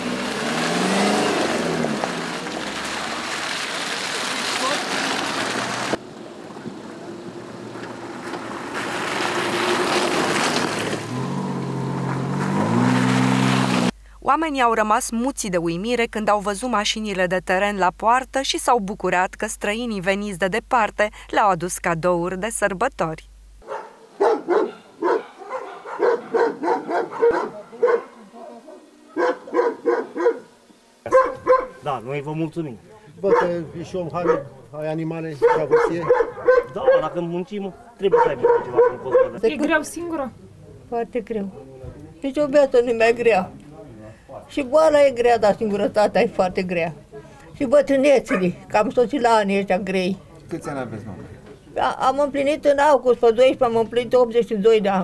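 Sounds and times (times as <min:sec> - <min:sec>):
engine note rising: 0:00.0 - 0:02.5, 0:06.0 - 0:13.9
tyres on gravel: 0:00.0 - 0:13.9
off-road vehicle engines: 0:00.0 - 0:14.0, 0:26.4 - 0:55.0
dog barking: 0:23.6 - 0:31.8, 0:33.2 - 0:34.6, 0:35.3 - 0:39.4, 0:48.2 - 0:48.6.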